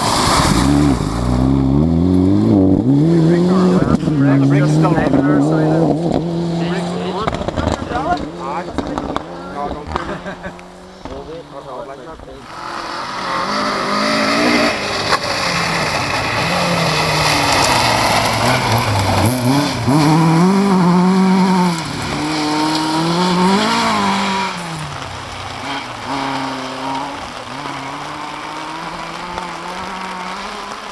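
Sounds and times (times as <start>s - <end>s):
rally car engine revving: 0.0s - 30.9s
tyres rushing on gravel: 0.0s - 30.9s.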